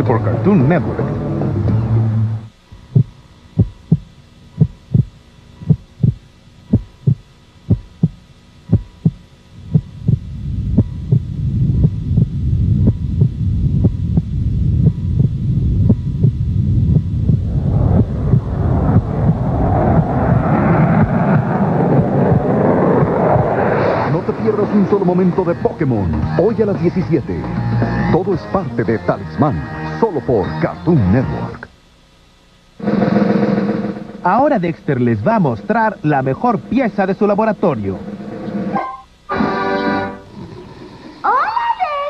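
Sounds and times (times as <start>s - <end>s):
low rumble: 0.0s - 28.4s, 32.8s - 38.7s
heartbeat thumps: 2.8s - 23.6s
loud rushing noise: 16.6s - 28.2s, 32.8s - 39.7s.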